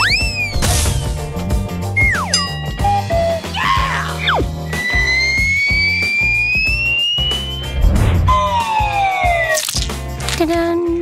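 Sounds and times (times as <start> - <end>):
cartoon whistle rising: 2.0 - 9.6
falling whistle glide: 4.2 - 9.6.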